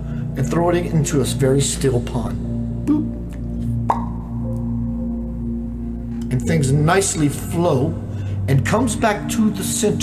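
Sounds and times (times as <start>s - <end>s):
drone-like background music: 0.0s - 10.0s
water drop plop: 3.9s - 4.7s.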